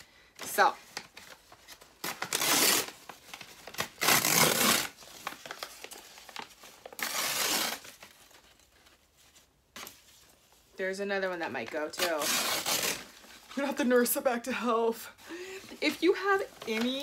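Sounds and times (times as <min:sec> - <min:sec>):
packing material crinkling: 0:00.5 - 0:10.7, 0:15.7 - 0:17.0.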